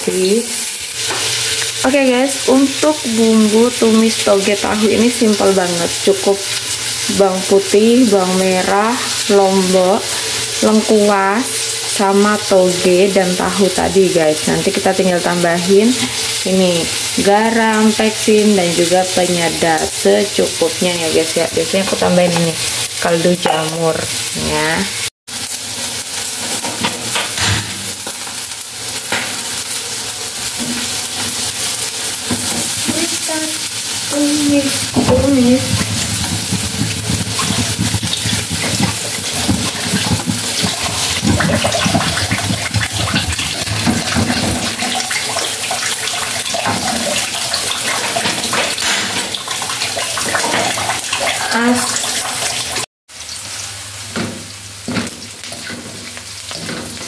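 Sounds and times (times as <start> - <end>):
tap water running into sink: 34.4 - 52.9.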